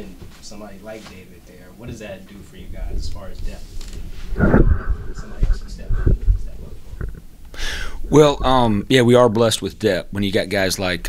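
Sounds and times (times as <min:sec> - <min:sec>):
microphone handling bumps: 0:02.8 - 0:07.3
person speaking: 0:04.4 - 0:11.0
sharp inhale: 0:07.5 - 0:08.1.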